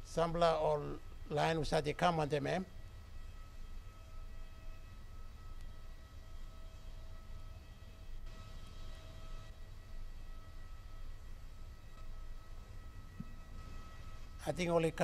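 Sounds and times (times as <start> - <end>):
jet airliner whine: 0.0 - 15.0.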